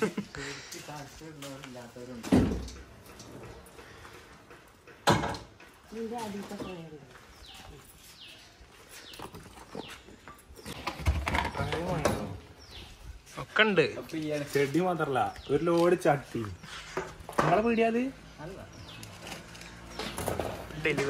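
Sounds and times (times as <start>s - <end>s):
heavy thumps of pots set down: 5.0s - 5.6s
bird chirping falling calls: 6.3s - 13.0s
voices: 20.1s - 21.0s.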